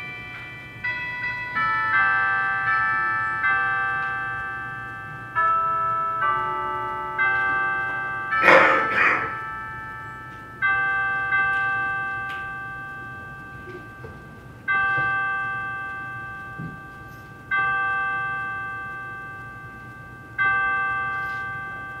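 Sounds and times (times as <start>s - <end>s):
bell tolling: 0.0s - 22.0s.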